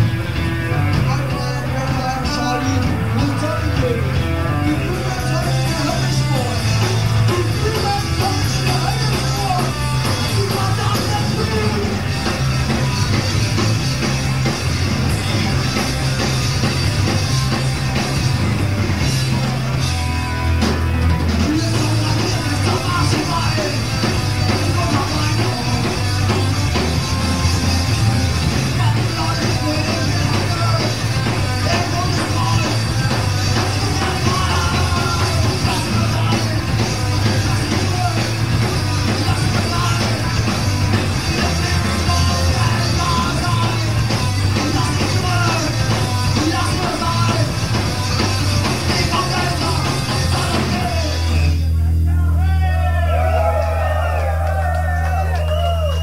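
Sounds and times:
bass guitar: 0:00.0 - 0:56.0
distorted guitar: 0:00.0 - 0:56.0
drums: 0:00.0 - 0:56.0
person singing: 0:33.6 - 0:40.4.

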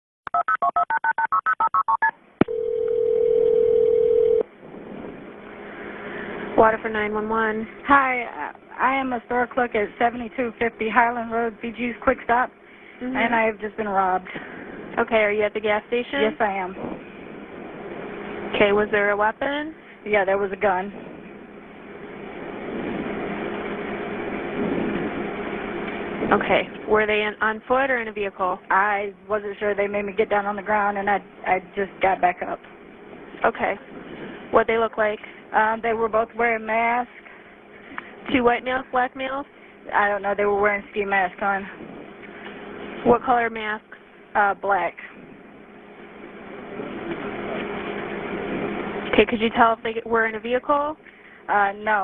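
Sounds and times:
steady ring tone: 0:00.4 - 0:04.5
telephone line click: 0:01.8 - 0:04.4
rushing noise over telephone line: 0:04.4 - 0:52.0.

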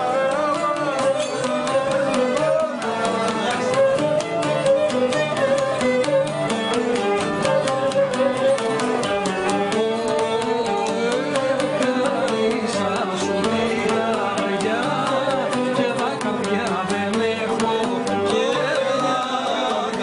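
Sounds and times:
instrumental folk music: 0:00.0 - 0:20.0.

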